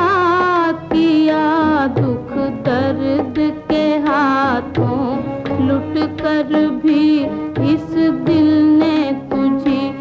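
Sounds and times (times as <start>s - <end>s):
instrumental accompaniment: 0.0s - 10.0s
woman singing with vibrato: 0.0s - 10.0s.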